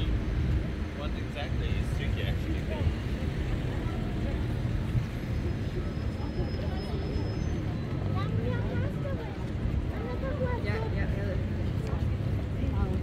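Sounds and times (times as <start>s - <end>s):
passers-by talking: 0.0s - 13.0s
traffic rumble: 0.0s - 13.0s.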